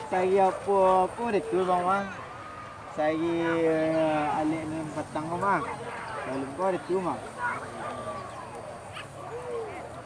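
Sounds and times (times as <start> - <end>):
dogs yelping and barking: 7.4 - 10.0.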